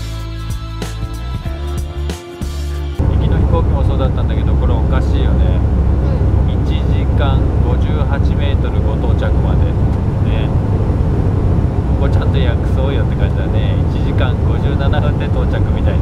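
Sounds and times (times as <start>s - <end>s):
voices talking: 3.0s - 10.6s
airplane cabin rumble: 3.0s - 16.0s.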